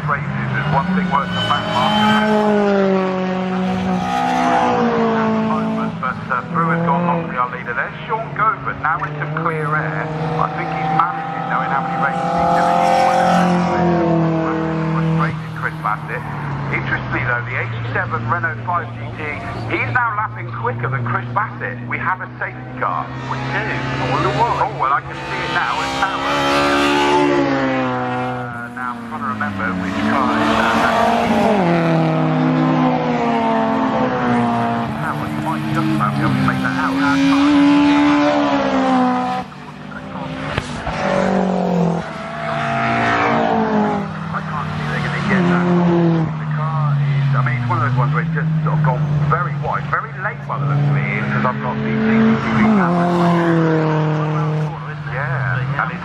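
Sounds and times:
racing car engines: 0:00.0 - 0:56.0.

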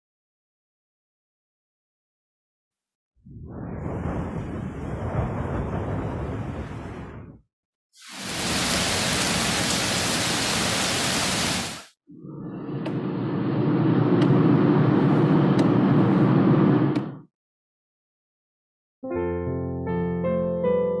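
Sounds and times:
steady hissing noise: 0:08.0 - 0:11.9.

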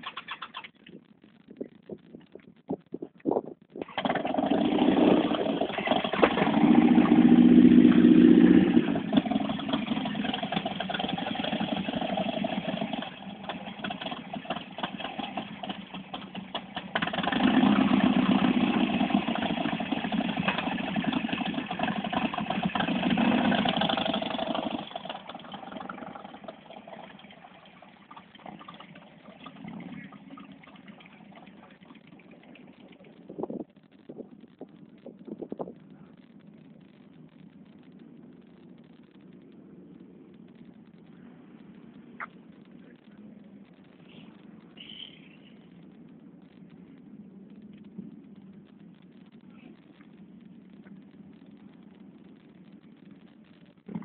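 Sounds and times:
motorcycle engine revving: 0:03.8 - 0:34.6.

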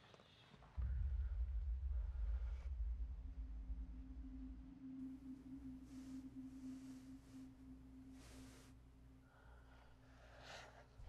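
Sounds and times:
deep rumble: 0:00.8 - 0:08.4
low humming drone: 0:00.8 - 0:10.4.

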